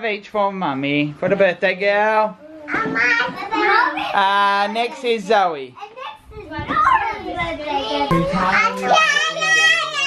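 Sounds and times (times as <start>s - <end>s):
young children chattering: 2.4s - 10.0s.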